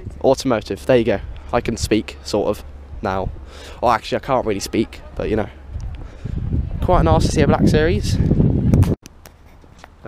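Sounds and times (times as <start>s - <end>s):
loud low rumble: 0.0s - 9.0s
street ambience: 0.0s - 10.0s.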